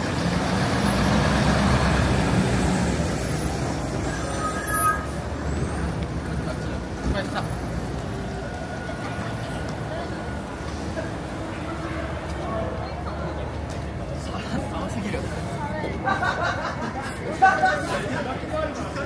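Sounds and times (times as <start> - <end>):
fire engine diesel engine: 0.0 - 19.0
street chatter: 0.0 - 19.0
short high squeal: 4.0 - 5.9.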